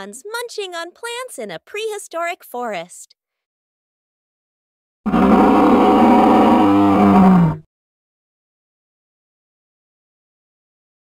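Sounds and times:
dinosaur roar: 5.1s - 7.7s.

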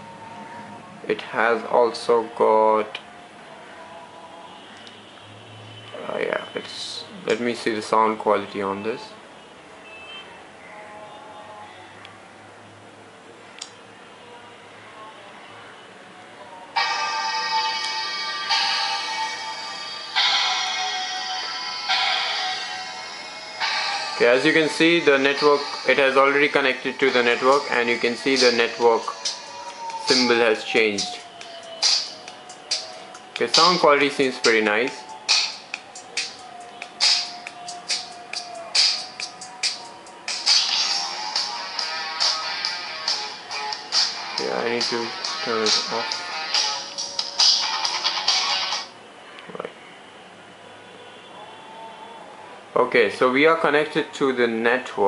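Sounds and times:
music from small tablet speaker: 16.5s - 49.0s.

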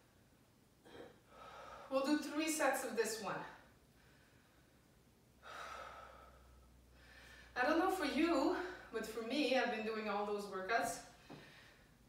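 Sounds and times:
woman breathing out heavily: 0.9s - 1.9s, 5.4s - 7.6s.

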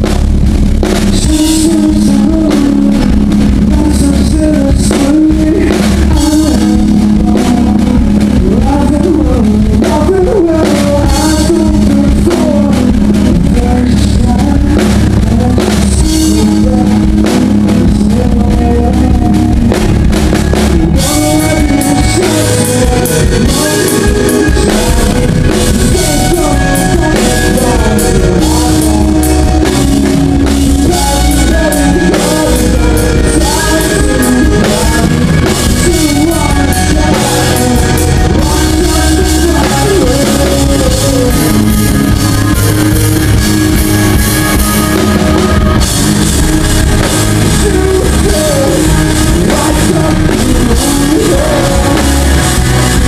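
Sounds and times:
drums: 0.0s - 53.0s
electric guitar: 0.0s - 53.0s
man singing: 0.8s - 53.0s.

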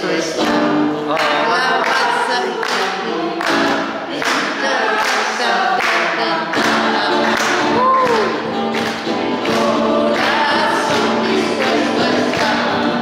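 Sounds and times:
group singing a worship song: 0.0s - 13.0s
musical accompaniment: 0.0s - 13.0s.

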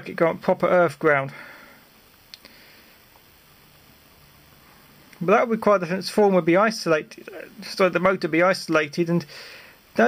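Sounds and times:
low steady background hiss: 0.0s - 10.0s.

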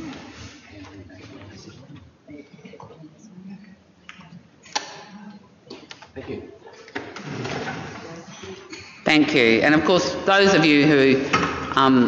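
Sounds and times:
faint indistinct voices: 0.0s - 9.0s.

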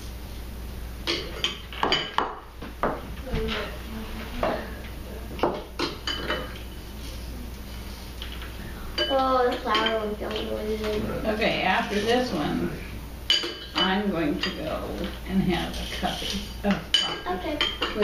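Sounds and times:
metal spoons clinking on ceramic bowls: 5.5s - 6.7s, 9.0s - 10.5s, 13.3s - 18.0s.

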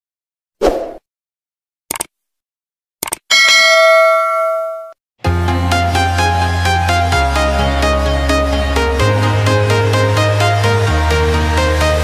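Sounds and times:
short clicks: 1.9s - 2.1s, 3.0s - 3.3s
bell chime: 3.3s - 5.0s.

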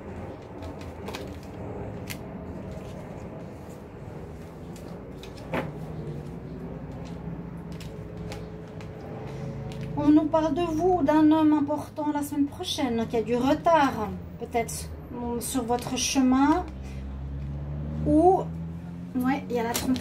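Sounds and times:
cards sliding and tapping: 4.4s - 10.0s.

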